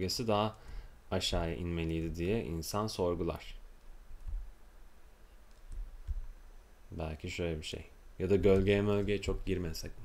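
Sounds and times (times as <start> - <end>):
soft low thumps: 0.6 - 2.5, 3.6 - 6.6, 8.3 - 9.7
computer mouse clicks: 5.4 - 6.3.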